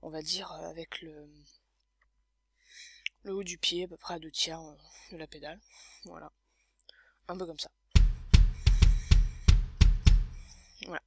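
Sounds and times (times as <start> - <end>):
kick drum thuds: 8.0 - 10.5.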